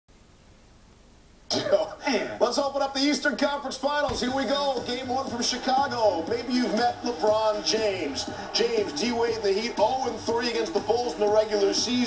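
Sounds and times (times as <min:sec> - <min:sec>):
man talking from television: 0:01.5 - 0:12.0.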